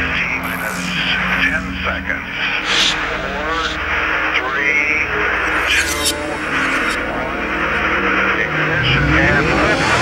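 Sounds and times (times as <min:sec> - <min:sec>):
launch countdown voice: 0:00.0 - 0:07.8
low synth drone: 0:00.0 - 0:10.0
electronic dance beat: 0:02.6 - 0:04.5.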